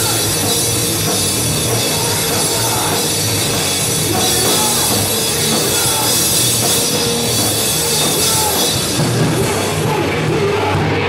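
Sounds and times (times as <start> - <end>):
distorted electric guitar: 0.0 - 11.0
drum kit pounding: 0.0 - 11.0
rock band playing live: 0.0 - 11.0.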